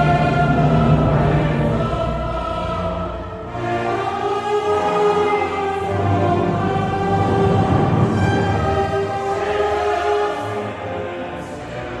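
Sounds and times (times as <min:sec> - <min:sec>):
choir and orchestra: 0:00.0 - 0:12.0.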